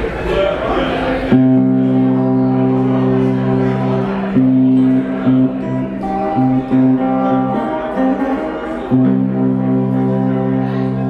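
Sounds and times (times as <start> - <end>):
plucked guitar notes: 1.2 - 11.0
held low note: 1.3 - 11.0.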